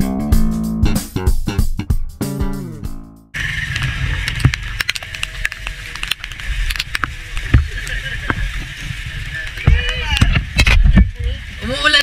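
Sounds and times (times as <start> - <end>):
motorcycle engine rumble: 2.6 - 11.8
rain hiss: 3.4 - 12.0.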